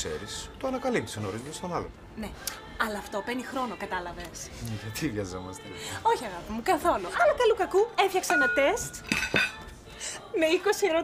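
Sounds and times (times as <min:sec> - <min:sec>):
cutlery and dishes clinking: 0:08.2 - 0:09.7.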